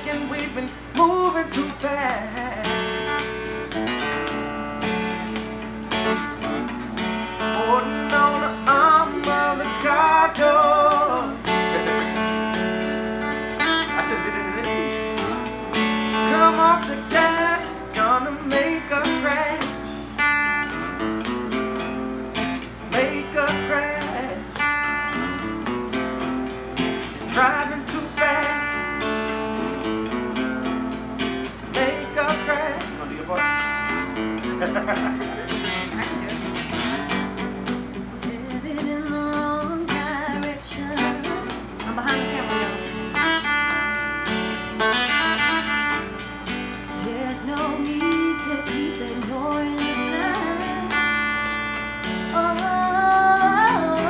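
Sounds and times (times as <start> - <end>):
slide guitar playing: 0.0 - 54.0.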